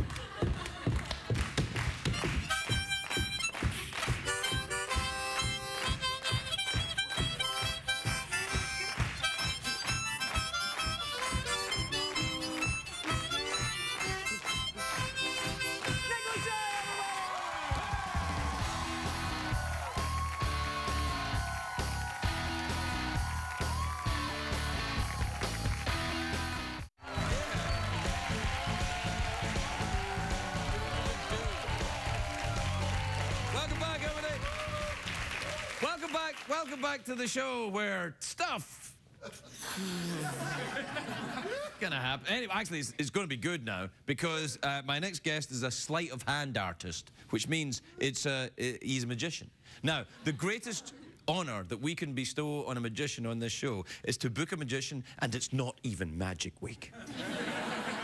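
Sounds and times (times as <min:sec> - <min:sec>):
harmonicas playing chords: 0:02.3 - 0:16.6
band music with strong bass: 0:18.1 - 0:34.8.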